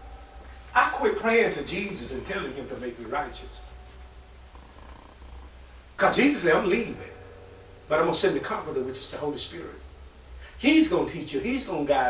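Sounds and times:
faint hiss: 0.0 - 12.0
low steady hum: 0.0 - 12.0.

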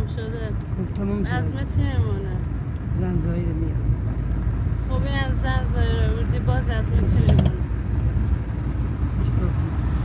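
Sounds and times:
car road rumble: 0.0 - 10.0
woman speaking: 4.9 - 7.7.

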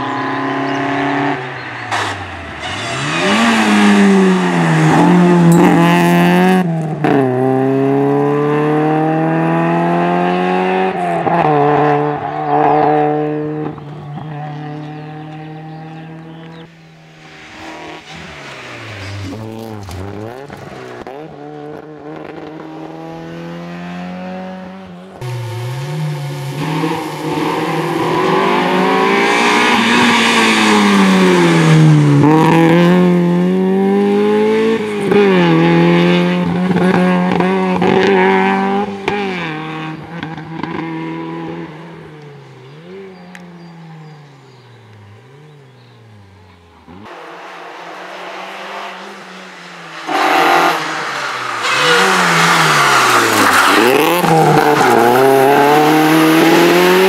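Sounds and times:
rally car engine at full throttle: 0.0 - 57.0.

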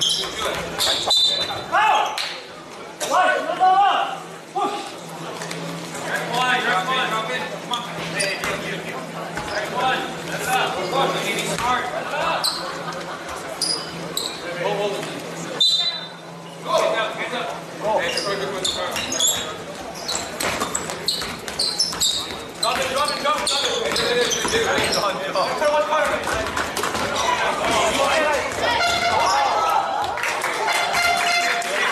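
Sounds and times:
sneakers squeaking: 0.0 - 2.6, 5.4 - 17.0, 17.6 - 30.1
people talking and calling out: 0.0 - 31.9.

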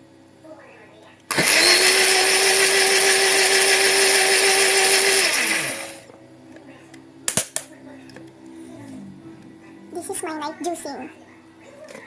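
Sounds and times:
blender motor running: 1.3 - 6.1.

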